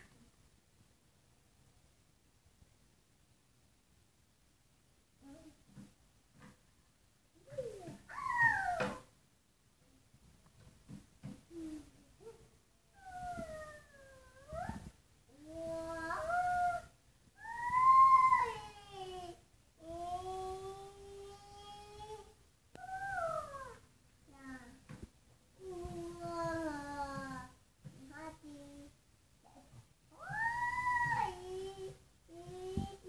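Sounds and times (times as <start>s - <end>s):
child calling: 7.5s - 9.0s, 15.6s - 19.0s, 20.7s - 23.8s, 30.2s - 33.0s.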